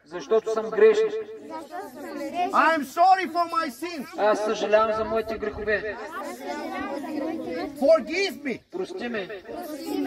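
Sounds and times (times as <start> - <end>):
children reciting prayer together: 0.8 - 10.0
leader reciting: 2.4 - 5.9, 7.7 - 10.0.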